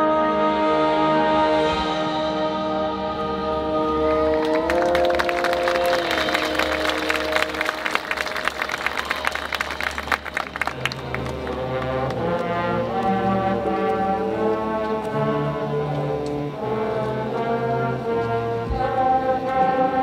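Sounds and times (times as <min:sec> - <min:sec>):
brass chords: 0:00.0 - 0:20.0.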